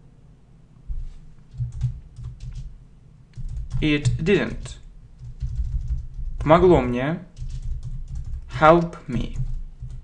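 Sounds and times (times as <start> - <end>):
computer keyboard typing: 1.5 - 2.7, 3.4 - 10.0.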